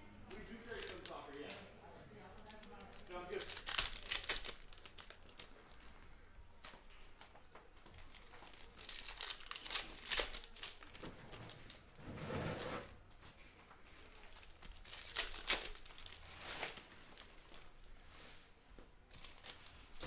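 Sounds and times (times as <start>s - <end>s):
foil wrapper tearing and crinkling: 0.3s - 1.7s, 2.4s - 5.8s, 7.9s - 12.0s, 14.1s - 17.8s, 19.1s - 20.0s.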